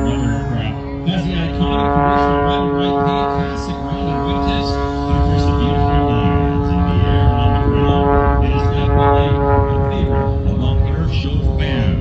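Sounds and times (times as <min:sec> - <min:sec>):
propeller plane engine droning: 0:00.0 - 0:12.0.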